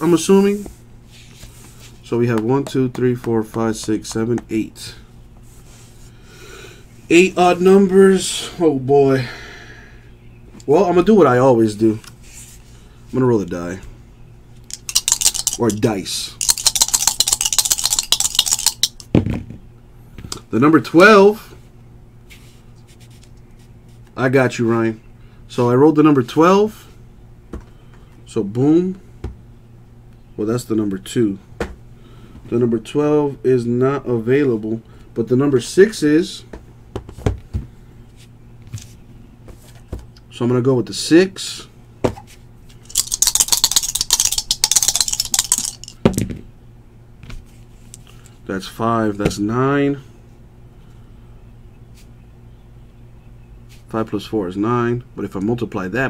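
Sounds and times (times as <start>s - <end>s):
dice rattling in hands: 14.7s - 19.1s, 42.8s - 46.0s
dice thrown down thud: 42.9s - 46.4s.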